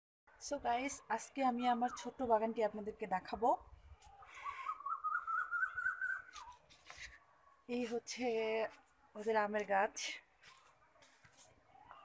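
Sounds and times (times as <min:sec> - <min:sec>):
bird whistled call: 0:04.4 - 0:06.6.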